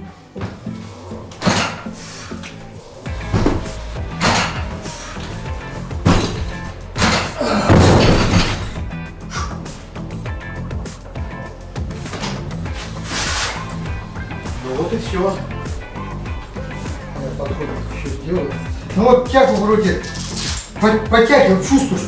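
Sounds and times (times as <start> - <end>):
music playing: 0.0 - 22.0.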